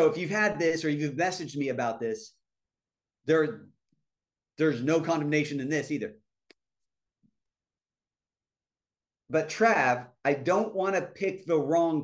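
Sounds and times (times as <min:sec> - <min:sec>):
man speaking: 0:00.0 - 0:02.4, 0:03.2 - 0:03.8, 0:04.6 - 0:06.2, 0:09.3 - 0:12.0.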